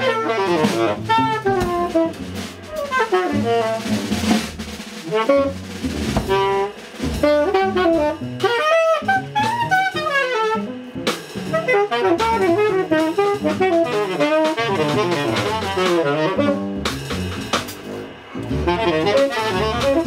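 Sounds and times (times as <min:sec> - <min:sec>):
drum kit with cymbals: 0:00.0 - 0:20.0
tenor saxophone improvising: 0:00.0 - 0:20.0
walking double bass: 0:00.0 - 0:20.0.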